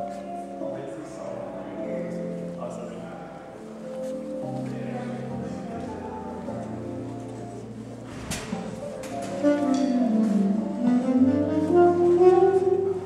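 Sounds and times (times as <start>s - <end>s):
live band playing: 8.4s - 13.0s.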